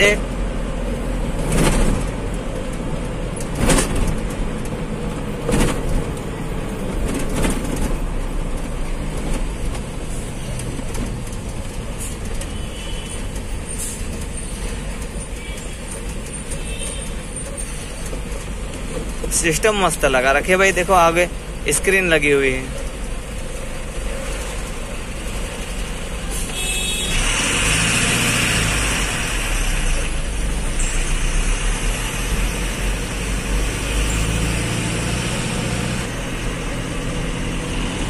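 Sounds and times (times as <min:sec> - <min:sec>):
truck engine and road noise: 0:00.0 - 0:38.0
sharp knocks and rattles: 0:01.4 - 0:12.6.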